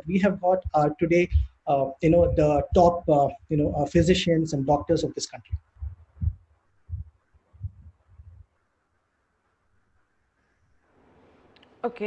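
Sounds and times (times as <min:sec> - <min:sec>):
soft low thumps: 0:00.0 - 0:08.6.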